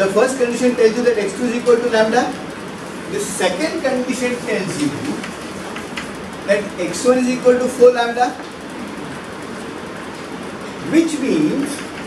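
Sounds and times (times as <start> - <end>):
classroom background rush: 0.0 - 12.0
man speaking: 3.1 - 5.2.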